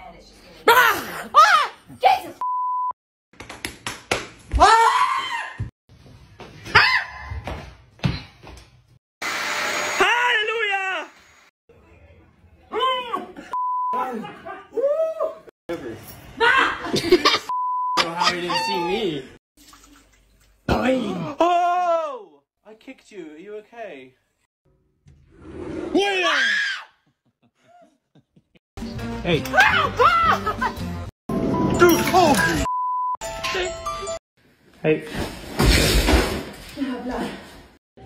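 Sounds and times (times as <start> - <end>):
censor bleep: 2.4 - 3.0, 13.6 - 14.0, 17.5 - 18.1, 32.6 - 33.2
high-pitched voices crying out: 18.1 - 19.2.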